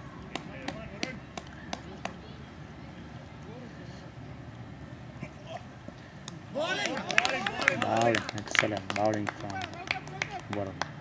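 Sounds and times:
distant voices of players: 0.0 - 11.0
open-field ambience: 0.0 - 11.0.

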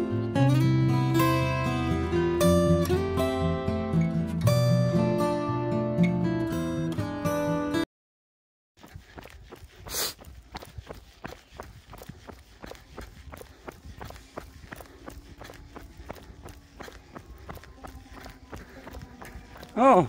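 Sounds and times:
running footsteps on asphalt: 8.8 - 20.0.

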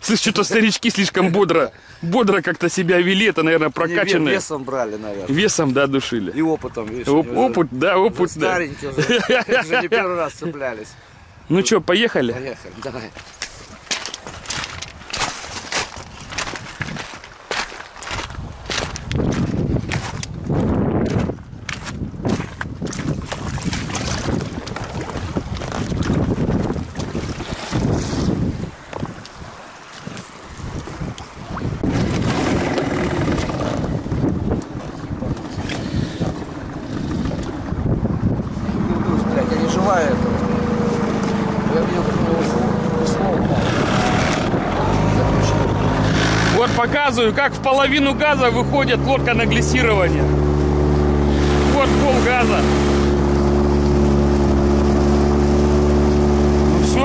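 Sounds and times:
wind buffeting microphone: 12.4 - 57.0
outboard motor running: 22.3 - 29.0, 30.7 - 57.0.

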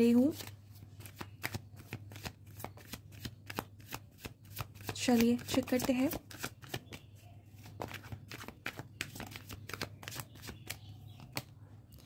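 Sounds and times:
cards shuffled by hand: 0.3 - 7.0, 7.6 - 11.5.

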